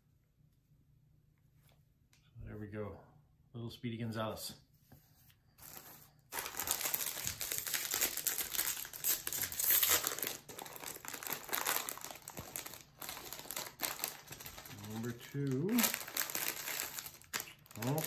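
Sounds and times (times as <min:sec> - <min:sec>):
plastic packet crinkling: 0:05.6 - 0:18.0.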